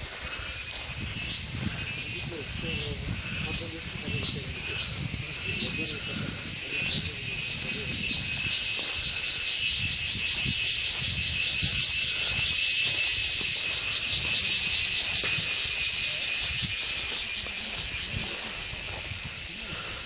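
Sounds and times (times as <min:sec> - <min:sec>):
insects buzzing: 0:00.0 - 0:20.0.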